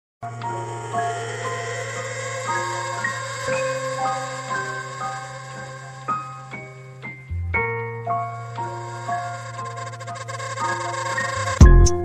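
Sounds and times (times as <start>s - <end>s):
soft instrumental music: 4.4s - 12.0s.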